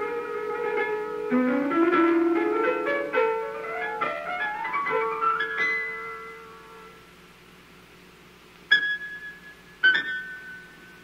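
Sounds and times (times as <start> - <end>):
solo piano: 0.0 - 7.3, 8.6 - 11.0.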